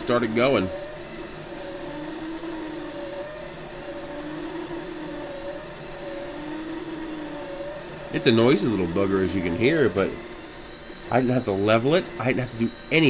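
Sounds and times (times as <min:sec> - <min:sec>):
stepper motors whining: 0:00.0 - 0:13.0.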